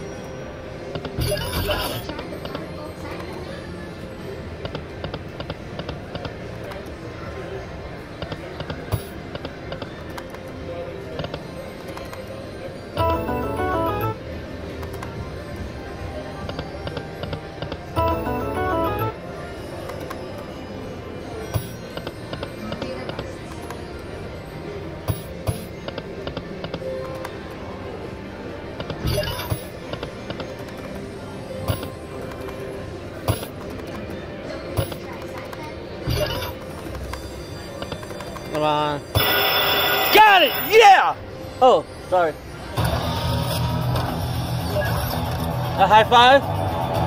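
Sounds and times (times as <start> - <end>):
jingle of chiming tones: 12.7 - 14.2, 18.0 - 19.2
slot machine music: 12.9 - 14.6, 17.9 - 19.7, 36.2 - 41.2
casino floor din: 13.0 - 14.2, 16.5 - 19.2, 39.2 - 40.8.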